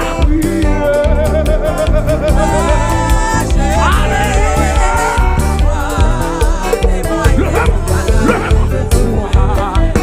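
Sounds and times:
bass guitar: 0:00.0 - 0:10.0
drum kit beat: 0:00.0 - 0:10.0
praise band playing: 0:00.0 - 0:10.0.

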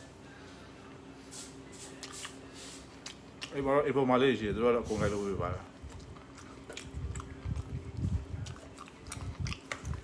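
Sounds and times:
person chewing food: 0:02.0 - 0:03.6, 0:05.6 - 0:10.0.

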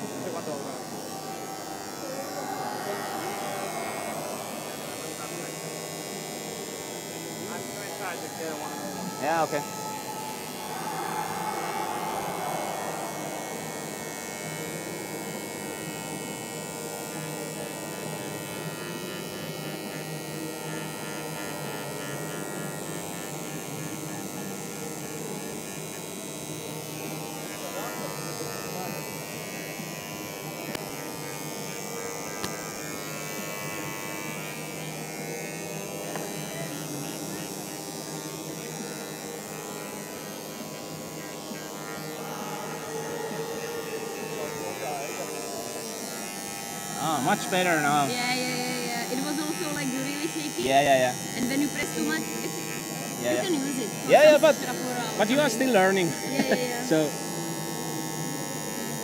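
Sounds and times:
vibrating engraver buzzing: 0:00.0 - 0:59.0.

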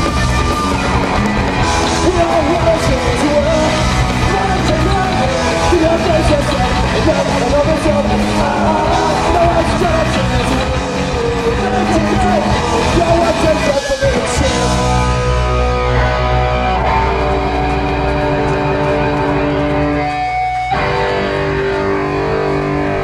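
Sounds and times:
punk rock band playing live: 0:00.0 - 0:23.0.

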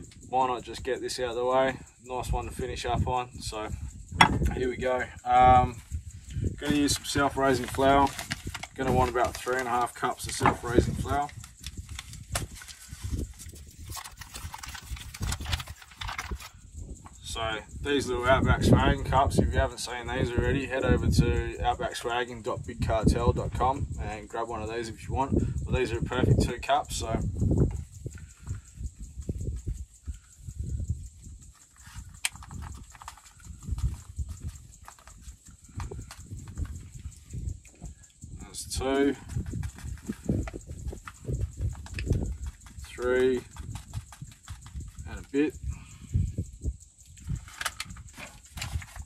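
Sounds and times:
paper packet crinkling: 0:06.8 - 0:11.0, 0:11.8 - 0:16.5
paper bag rustling: 0:12.0 - 0:16.5.

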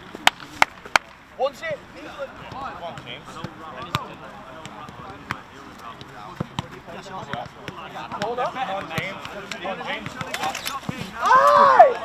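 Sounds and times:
players' voices: 0:00.0 - 0:12.0
football thuds: 0:02.4 - 0:11.2.

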